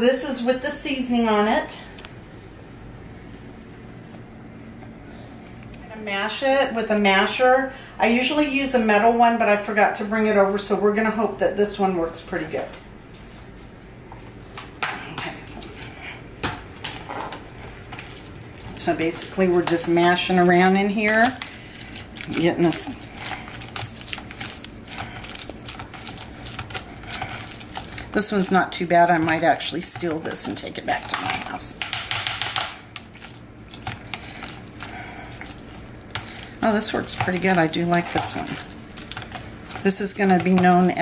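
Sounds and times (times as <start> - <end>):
masher squishing avocado: 17.4 - 41.0.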